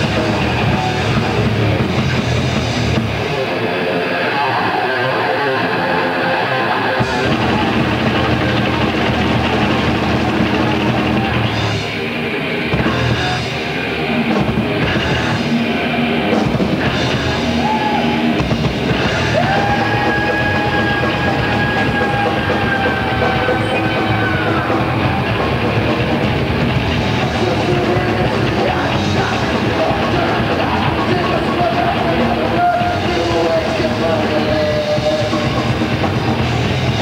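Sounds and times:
rapid dense drumming: 0.0s - 3.4s, 7.0s - 37.0s
metal band playing loud: 0.0s - 37.0s.

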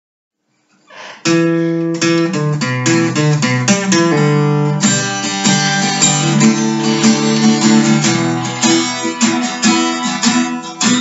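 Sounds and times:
acoustic guitar chord ringing: 1.2s - 11.0s.

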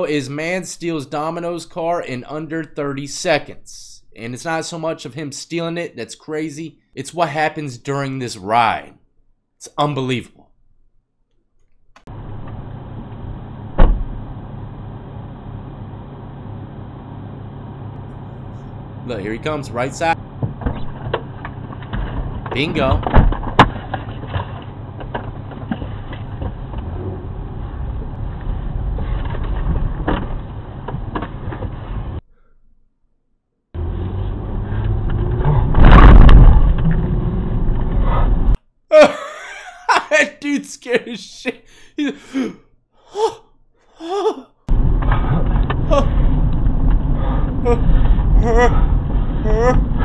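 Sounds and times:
car engine running: 12.1s - 32.2s, 33.8s - 38.6s
car interior road noise: 24.3s - 32.2s
man laughing: 38.9s - 44.6s, 45.9s - 46.1s, 47.6s - 48.8s, 49.4s - 49.9s
man gasping: 41.6s - 44.5s.

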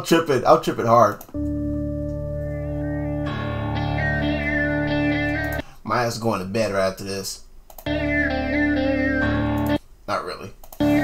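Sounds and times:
electric guitar chord: 1.4s - 5.6s, 7.9s - 9.8s
lead guitar with wavering notes: 1.4s - 5.6s, 7.9s - 9.8s.

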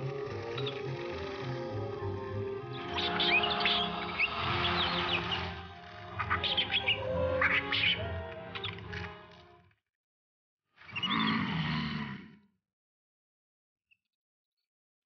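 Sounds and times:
orchestral score held notes: 0.0s - 9.6s
creatures chittering high chirps: 2.8s - 8.9s.

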